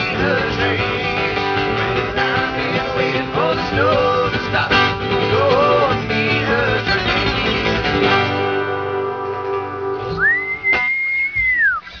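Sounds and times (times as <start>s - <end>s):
acoustic guitar chord: 0.0s - 11.0s
person whistling: 10.1s - 12.0s.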